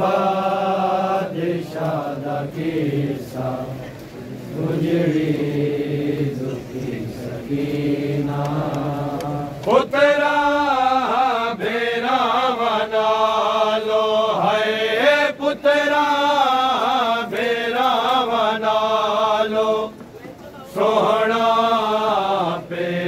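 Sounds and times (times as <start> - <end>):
men chanting a lament: 0.0 - 20.0, 20.6 - 23.0.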